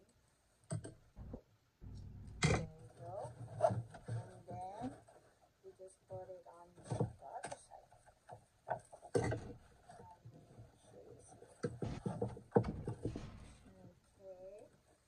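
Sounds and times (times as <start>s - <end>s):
taps and knocks: 11.6s - 13.5s.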